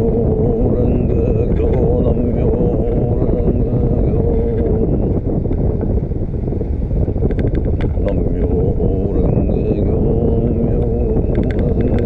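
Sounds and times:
wind rumble on microphone: 0.0s - 12.0s.

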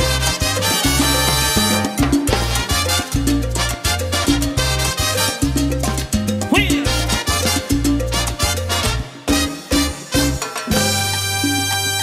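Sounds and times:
strong bass line: 0.0s - 9.1s
latin dance band playing: 0.0s - 12.0s.

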